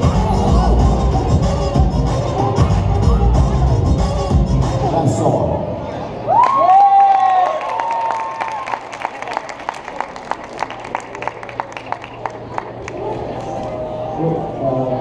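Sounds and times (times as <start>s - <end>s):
audience woo shouts: 6.2s - 8.8s
audience applause: 6.4s - 13.5s.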